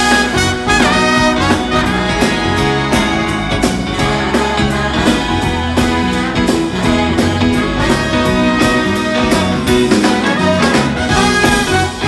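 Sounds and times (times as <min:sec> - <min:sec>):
live band playing: 0:00.0 - 0:12.0
saxophone: 0:00.0 - 0:12.0
trumpet: 0:00.0 - 0:12.0.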